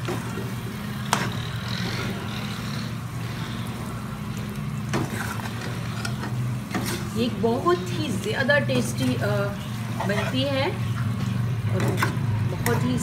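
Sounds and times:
chicken sizzling in oil: 0:00.0 - 0:13.0
steady low hum: 0:00.0 - 0:13.0.

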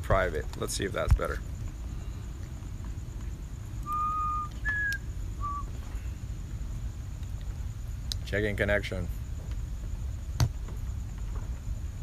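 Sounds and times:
low room rumble: 0:00.0 - 0:12.0
short whistled notes: 0:03.8 - 0:05.8.

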